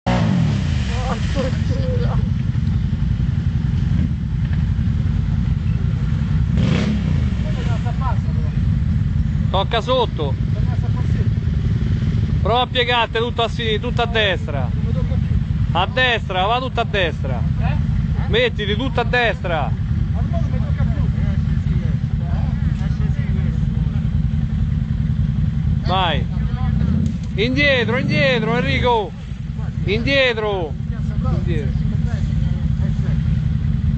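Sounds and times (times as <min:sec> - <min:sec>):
quad bike engine revving: 0:00.0 - 0:33.9.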